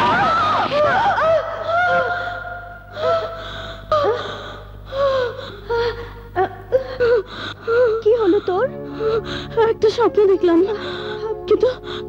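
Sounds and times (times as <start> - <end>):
women gasping cries: 0.7 - 9.8.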